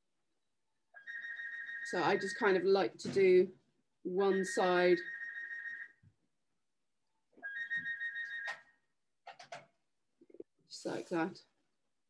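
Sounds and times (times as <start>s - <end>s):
high electronic ringing tone: 1.0s - 2.6s, 4.3s - 6.0s, 7.4s - 8.8s.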